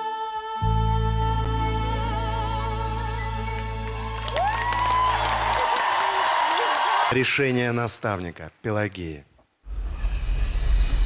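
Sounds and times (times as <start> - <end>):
applause and cheering: 3.5 - 7.4
person whooping: 4.3 - 7.1.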